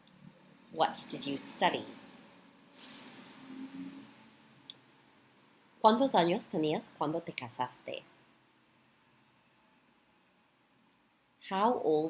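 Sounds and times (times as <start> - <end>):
woman speaking: 0.8 - 2.0, 5.8 - 8.0, 11.4 - 12.0.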